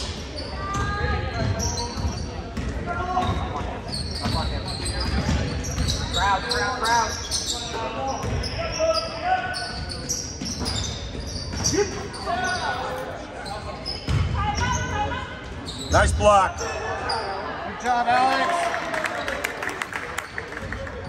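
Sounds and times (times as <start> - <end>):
sneakers squeaking: 0.0 - 17.6.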